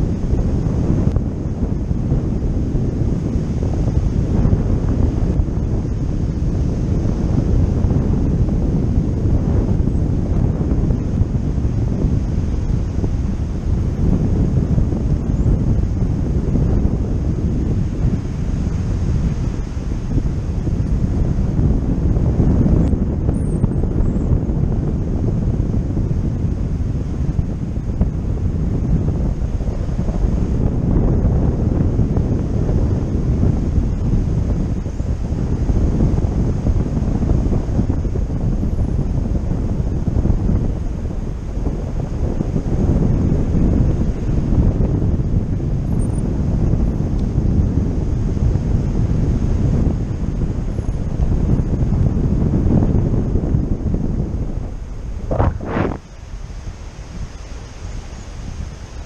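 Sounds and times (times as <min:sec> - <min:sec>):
wind rumbling on microphone: 0:00.0 - 0:59.0.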